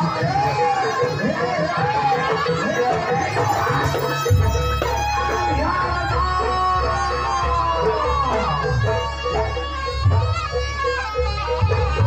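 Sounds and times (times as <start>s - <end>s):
reedy wind instrument melody: 0.0s - 12.0s.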